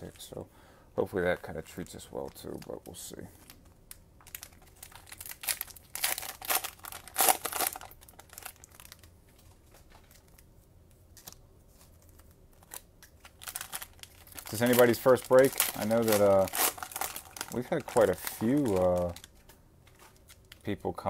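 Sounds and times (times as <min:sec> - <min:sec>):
foil packs crinkling: 0:04.2 - 0:09.1, 0:11.2 - 0:21.0.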